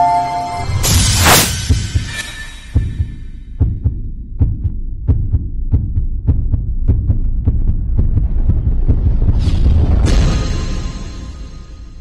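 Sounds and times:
throbbing bass pulses: 2.8 - 10.9.

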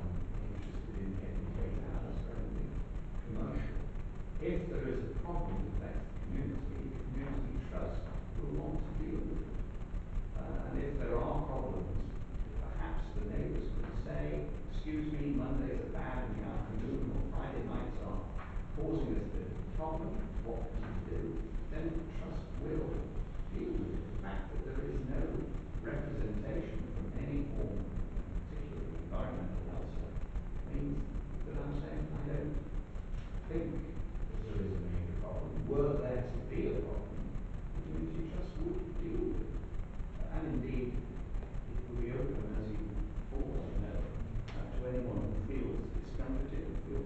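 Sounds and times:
indistinct speech: 0.0 - 9.6, 10.3 - 32.7, 33.4 - 39.6, 40.2 - 47.0
steady low hum: 0.0 - 47.0.

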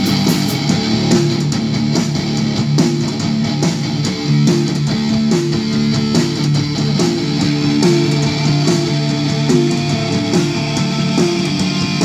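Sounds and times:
bass guitar: 0.0 - 12.0
drum kit steady beat: 0.0 - 12.0
electric guitar: 0.0 - 12.0.

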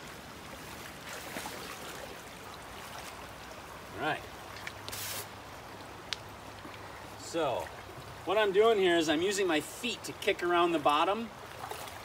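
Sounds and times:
feet stirring streambed: 0.0 - 9.7, 10.6 - 12.0
creek water running: 0.0 - 12.0.

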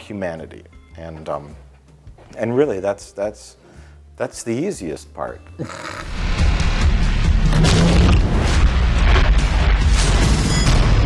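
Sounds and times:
dense trailer music: 6.1 - 11.0.

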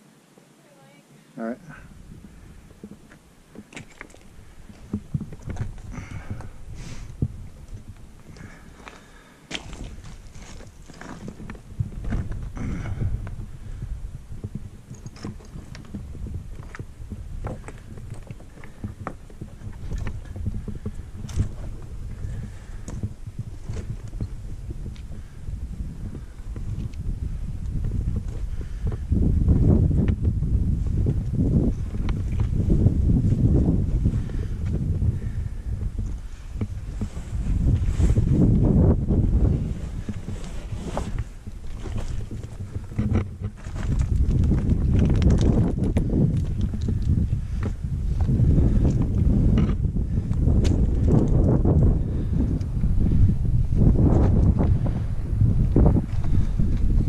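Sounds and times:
wind buffeting microphone: 1.7 - 57.0
boots crunching on scree: 2.2 - 13.6.

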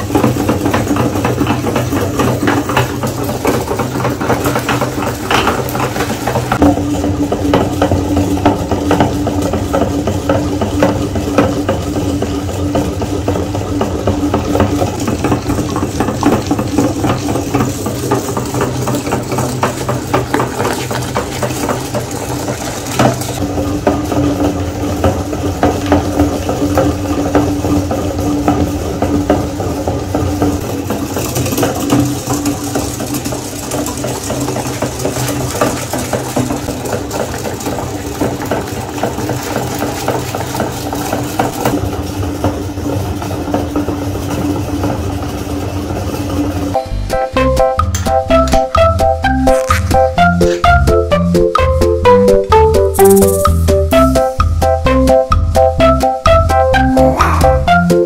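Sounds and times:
meat grinder mechanical hum: 0.0 - 58.0.

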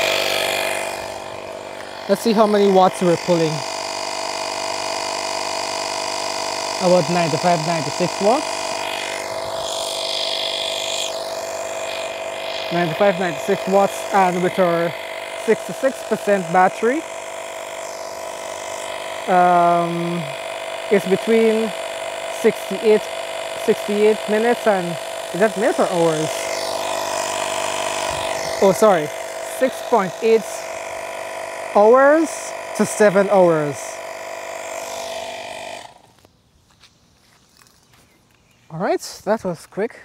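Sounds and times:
air compressor running: 0.0 - 36.8.

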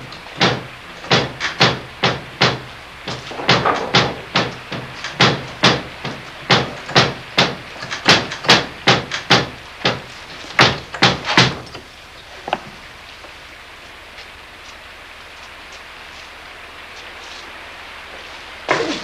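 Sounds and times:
heavy thumps: 0.0 - 12.8
steady low hiss: 0.0 - 19.0.

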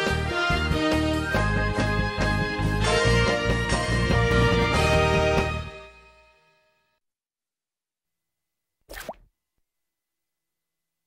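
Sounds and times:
cartoon plop sound effect: 8.9 - 9.3.

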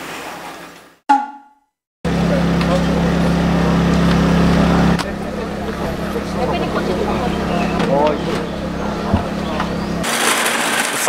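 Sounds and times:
faint voices: 2.1 - 10.1
low motor hum: 2.1 - 10.9.

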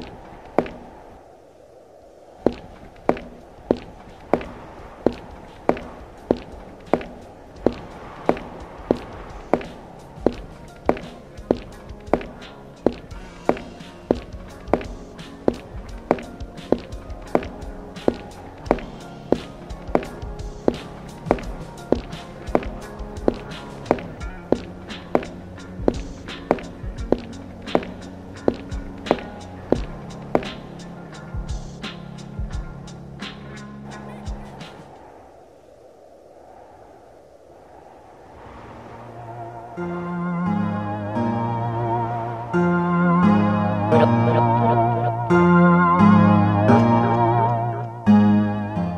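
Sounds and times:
slow footsteps: 0.0 - 39.3
music with low chords: 5.8 - 34.6, 39.7 - 48.9.

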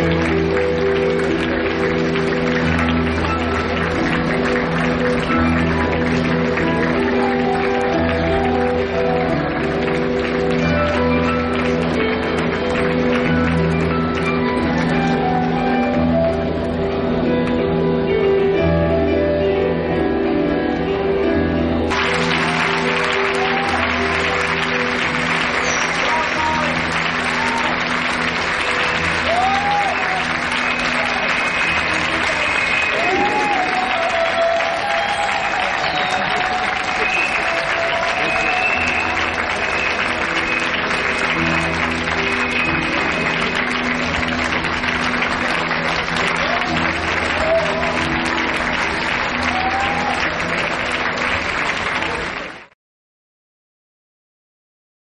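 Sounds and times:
audience applauding: 0.0 - 15.8, 21.9 - 52.8.

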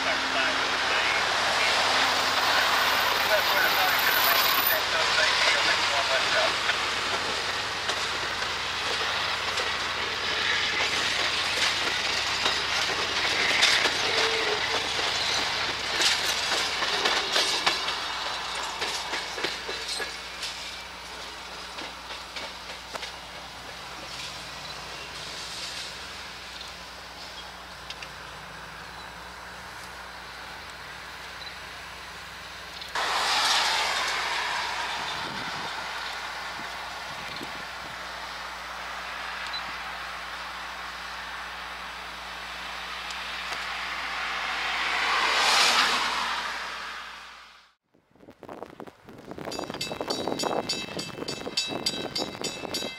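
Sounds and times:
train wheels clicking over rail joints: 1.4 - 28.2, 32.4 - 38.0
sudden rush of noise: 33.0 - 40.9, 43.2 - 47.8.

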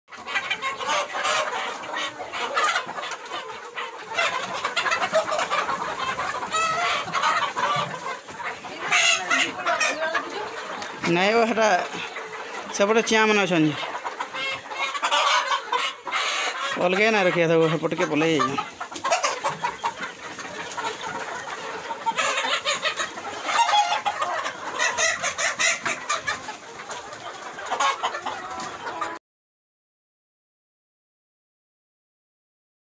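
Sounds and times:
flock of chickens clucking: 0.1 - 29.2.

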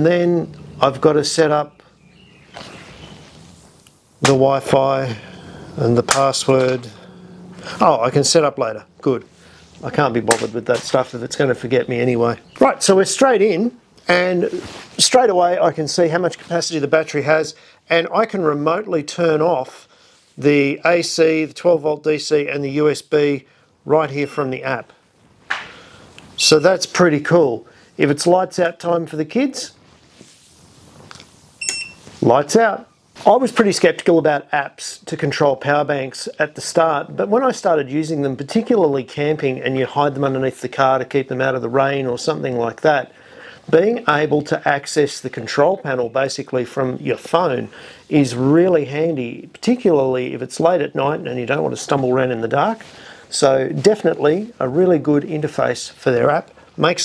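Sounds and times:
soft rustle: 14.0 - 15.2, 29.6 - 32.4
short high electronic beep: 31.6 - 32.0.

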